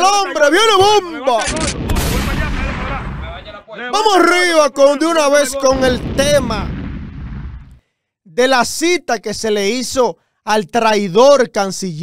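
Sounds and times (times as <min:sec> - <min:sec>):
explosion blast rumbling: 0:01.6 - 0:03.6, 0:05.6 - 0:07.8.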